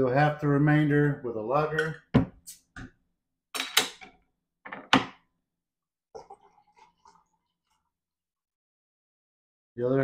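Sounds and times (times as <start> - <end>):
glass bottle knocks and clinks: 1.7 - 2.4.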